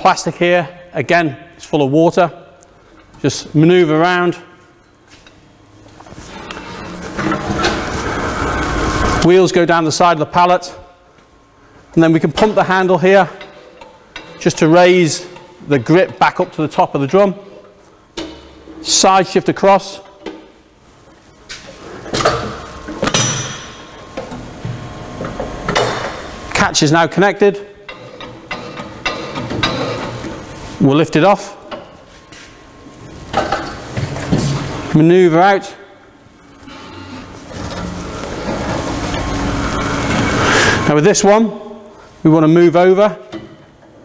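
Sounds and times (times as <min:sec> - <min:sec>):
castor wheels rolling on concrete: 0:06.1 - 0:09.3, 0:36.5 - 0:40.9
metal clanks and knocks: 0:27.9 - 0:30.3.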